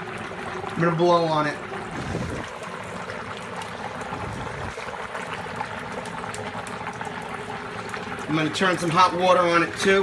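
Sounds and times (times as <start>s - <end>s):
dry ice bubbling and fizzing: 0.0s - 10.0s.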